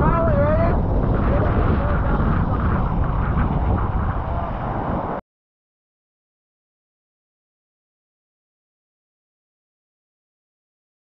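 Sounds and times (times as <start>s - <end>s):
wind buffeting microphone: 0.0s - 5.2s.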